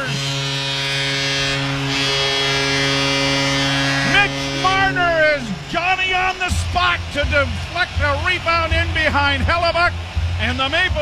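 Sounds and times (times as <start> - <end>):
arena goal horn blast: 0.0 - 8.8.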